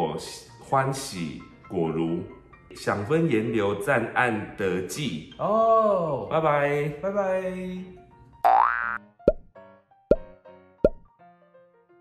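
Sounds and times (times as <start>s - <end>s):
soft background music: 0.0s - 12.0s
cartoon plop sound effects: 8.5s - 9.5s, 10.1s - 10.3s.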